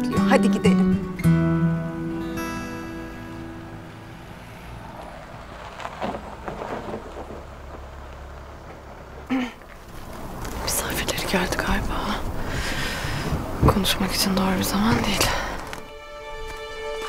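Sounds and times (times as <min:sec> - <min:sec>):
guitar background music: 0:00.0 - 0:04.6, 0:14.1 - 0:17.0
car driving rumble: 0:00.0 - 0:15.9.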